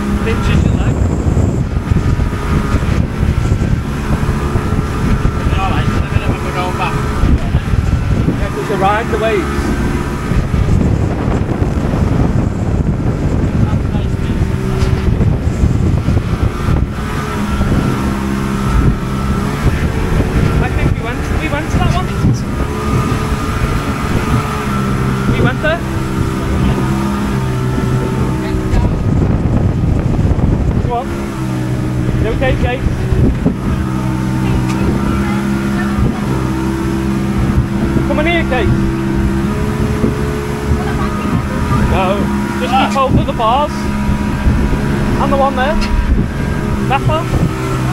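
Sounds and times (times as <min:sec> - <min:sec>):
boat engine drone: 0:00.0 - 0:47.9
wind and water rushing: 0:00.0 - 0:47.9.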